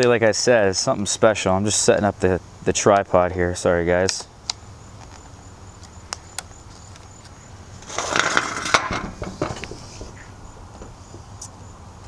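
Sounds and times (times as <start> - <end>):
tripod rustling and knocking: 7.8 - 10.2.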